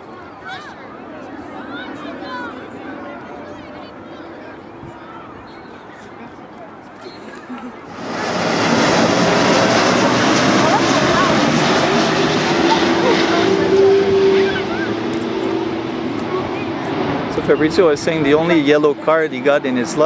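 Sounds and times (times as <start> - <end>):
airplane roaring overhead: 0.0 - 20.0.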